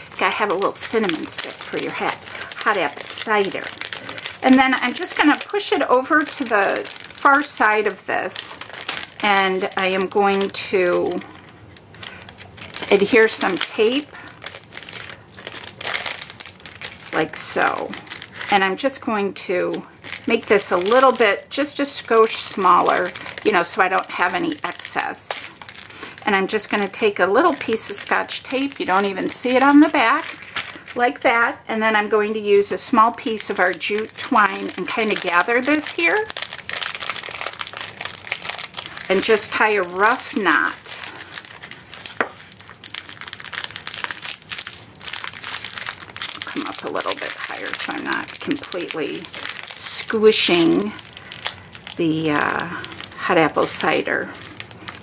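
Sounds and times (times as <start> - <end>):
plastic bag crinkling: 0.0 - 55.0.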